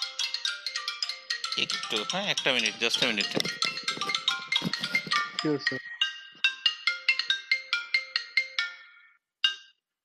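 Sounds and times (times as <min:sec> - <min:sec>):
phone ringtone melody: 0:00.0 - 0:09.8.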